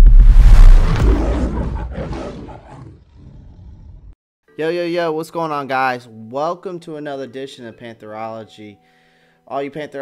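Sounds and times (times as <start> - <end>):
big cat roaring: 1.2 - 4.2.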